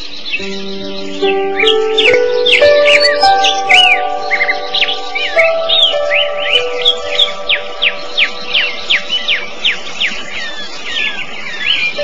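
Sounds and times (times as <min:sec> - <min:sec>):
soft background music: 0:00.3 - 0:10.2.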